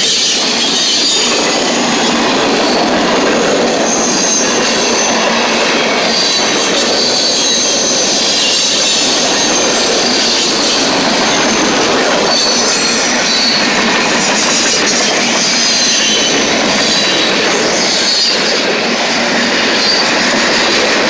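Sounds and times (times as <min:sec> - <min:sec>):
freight cars rumbling on rails: 0:00.0 - 0:21.0
high-pitched wheel squeals: 0:00.0 - 0:21.0.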